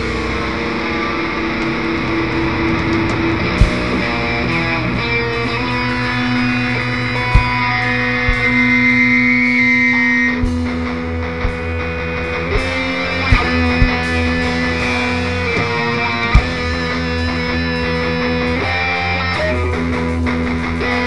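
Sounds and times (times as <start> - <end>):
live rock band playing: 0.0 - 21.0
sharp drum hits: 2.8 - 9.2, 10.4 - 17.2.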